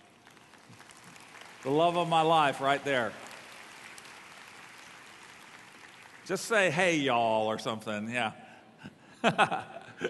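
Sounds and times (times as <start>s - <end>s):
faint applause: 0.0s - 6.8s.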